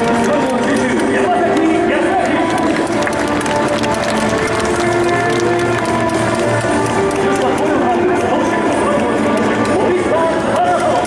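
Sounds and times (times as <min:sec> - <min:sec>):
crowd noise: 0:00.0 - 0:11.0
music over loudspeakers: 0:00.0 - 0:11.0
people clapping: 0:00.0 - 0:11.0.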